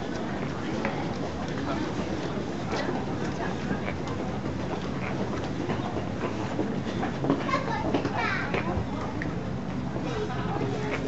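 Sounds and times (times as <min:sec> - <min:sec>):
busy pedestrian street ambience: 0:00.0 - 0:11.0.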